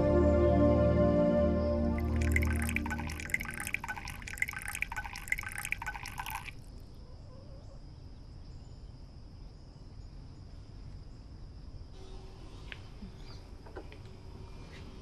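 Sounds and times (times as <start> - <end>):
liquid pouring into porcelain bowl: 2.0 - 6.6.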